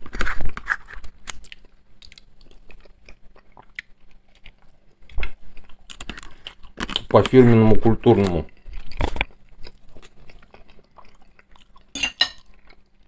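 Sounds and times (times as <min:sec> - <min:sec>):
chewing and wet mouth noises: 0:00.2 - 0:07.4, 0:08.1 - 0:13.0.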